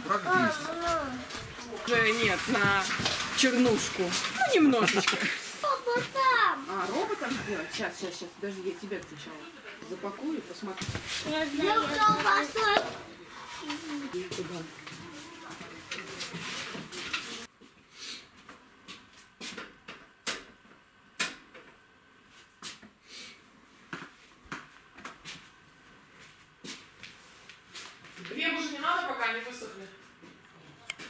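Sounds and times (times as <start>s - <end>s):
people talking: 0.0s - 17.5s, 28.2s - 30.0s.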